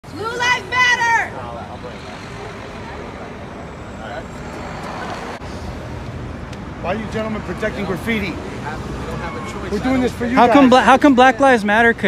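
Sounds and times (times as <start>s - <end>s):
faint voices: 0.0s - 6.1s
traffic hum: 0.0s - 12.0s.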